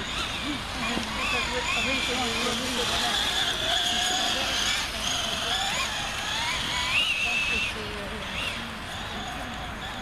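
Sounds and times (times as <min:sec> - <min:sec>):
toy truck motor whining: 0:00.0 - 0:10.0.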